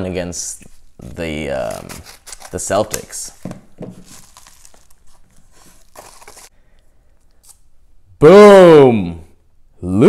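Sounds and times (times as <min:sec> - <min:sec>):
plastic crinkling and rustling: 0:01.6 - 0:06.5.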